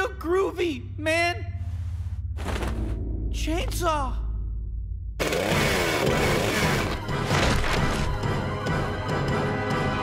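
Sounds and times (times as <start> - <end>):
music: 0.0 - 10.0.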